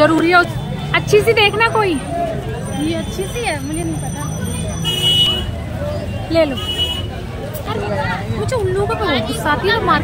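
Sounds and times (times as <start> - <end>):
crowd chatter: 0.0 - 10.0
traffic rumble: 0.0 - 10.0.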